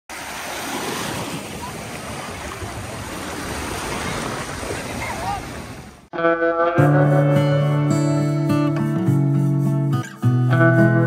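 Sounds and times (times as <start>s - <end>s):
sea surf washing on shore: 0.1s - 6.1s.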